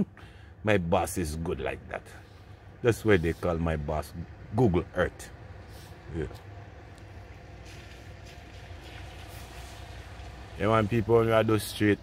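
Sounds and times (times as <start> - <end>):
car engine hum: 0.0 - 12.0
tyre hiss on wet street: 5.6 - 6.3, 7.0 - 12.0.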